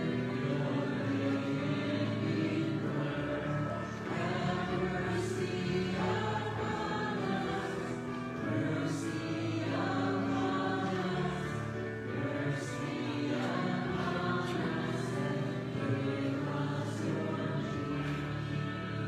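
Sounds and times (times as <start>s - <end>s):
congregation singing slow song: 0.0s - 19.0s.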